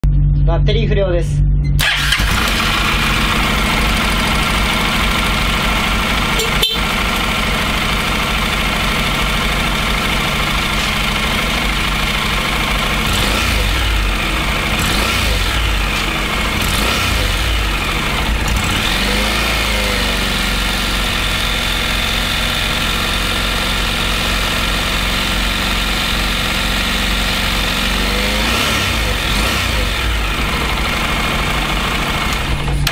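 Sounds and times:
motorcycle engine idling: 1.8 - 32.9.

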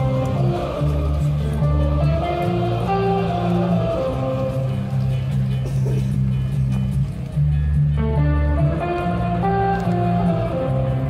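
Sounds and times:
amplified guitars and bass: 0.0 - 11.0
live rock band music: 0.0 - 11.0.

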